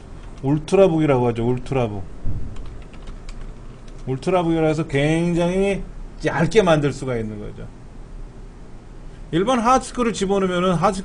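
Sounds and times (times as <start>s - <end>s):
keyboard typing clicks: 2.5s - 4.1s.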